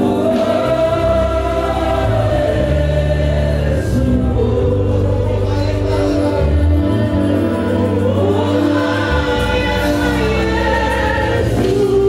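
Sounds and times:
gospel choir singing: 0.0 - 12.0
live band with bass line: 0.0 - 12.0.

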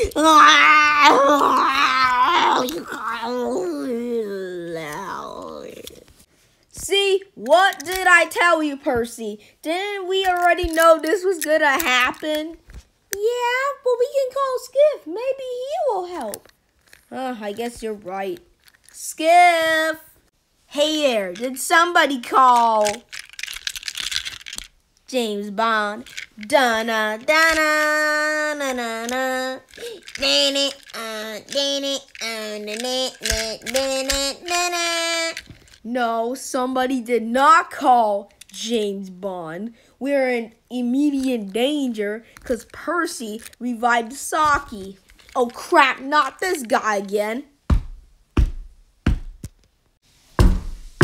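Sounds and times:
plastic toys clicking and clattering: 7.4 - 8.4, 10.2 - 12.6, 16.1 - 19.0, 21.4 - 24.8, 25.7 - 35.9, 38.3 - 38.7, 42.3 - 47.0.

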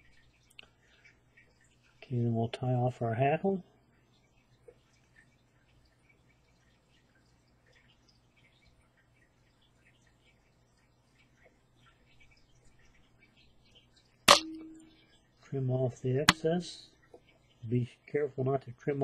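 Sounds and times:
metallic click with ringing: 14.3 - 14.9.

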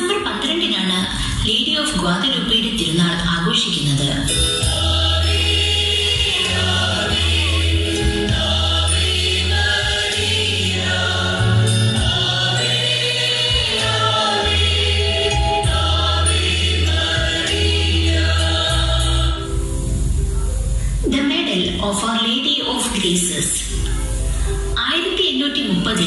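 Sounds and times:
choir singing: 4.6 - 19.5.

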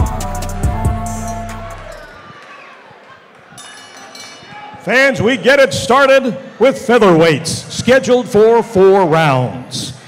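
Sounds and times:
man speaking over public address: 4.8 - 10.0.

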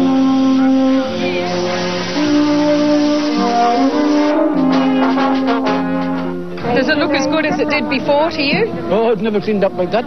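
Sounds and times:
brass band playing: 0.0 - 10.0.

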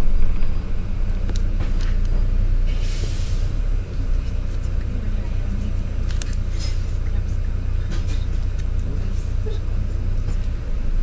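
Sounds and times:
vehicle rumbling along street: 0.0 - 11.0.

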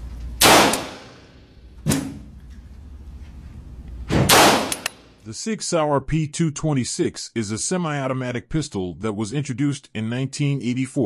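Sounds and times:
pistol shots: 0.4 - 2.2, 4.1 - 5.0.

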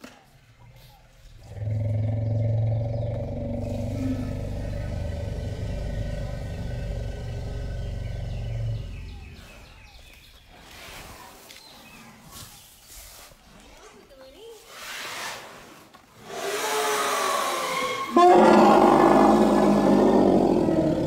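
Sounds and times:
elephant bellowing: 1.3 - 9.7, 16.3 - 21.0.

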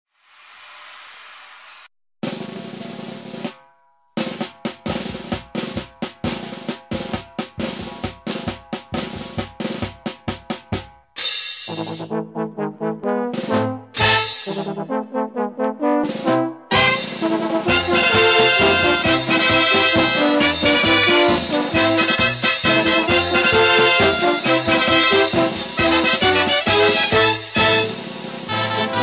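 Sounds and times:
cymbal crash: 0.2 - 3.6, 14.0 - 14.8, 16.7 - 26.3
drum roll: 0.4 - 12.2, 13.3 - 14.9, 16.0 - 29.0
snare and bass drum strokes: 0.5 - 12.1, 13.3 - 14.9, 16.0 - 29.0
brass playing: 11.7 - 29.0.

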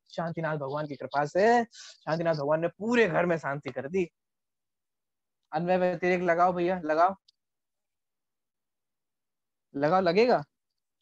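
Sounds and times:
man speaking: 0.1 - 4.2, 5.5 - 7.3.

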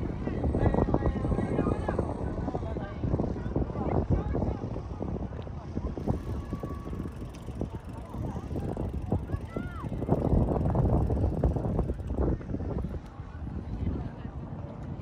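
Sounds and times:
wind rumble on microphone: 0.0 - 15.0
people talking indistinctly: 0.2 - 15.0.

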